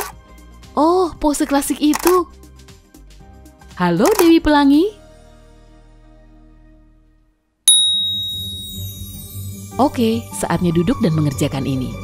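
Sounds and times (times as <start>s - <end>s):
background music: 0.0s - 12.0s
bright bell ding: 7.7s - 10.3s.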